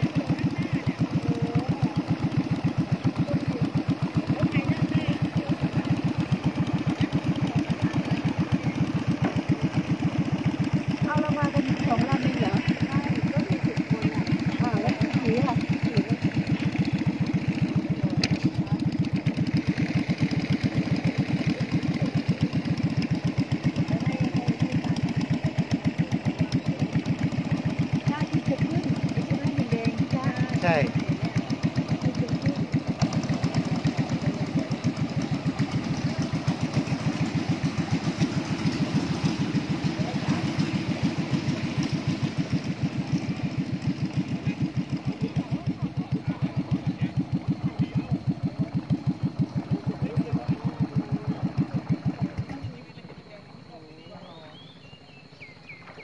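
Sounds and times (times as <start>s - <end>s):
boat engine chugging: 0.0s - 56.0s.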